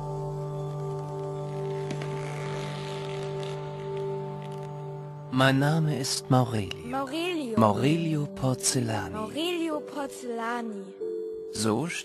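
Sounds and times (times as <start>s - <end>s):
sustained held chord: 0.0s - 12.0s.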